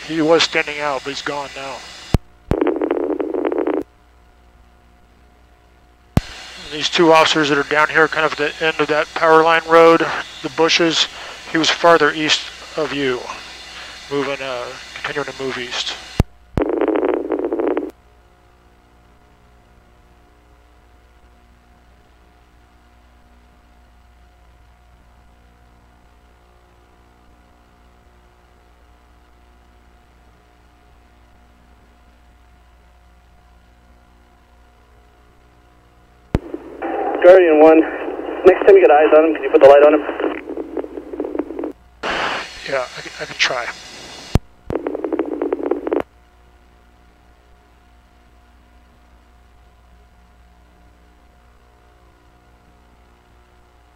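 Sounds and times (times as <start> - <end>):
faint radio hiss: 0.0 - 13.4, 14.0 - 53.9
buzzy police radio transmission: 6.6 - 13.2, 36.5 - 44.0, 44.7 - 46.0
radio click: 36.3 - 42.4.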